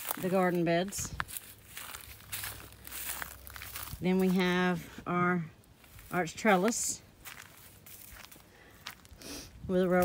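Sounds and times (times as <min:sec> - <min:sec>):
footsteps on dry grass: 0:00.0 - 0:10.0.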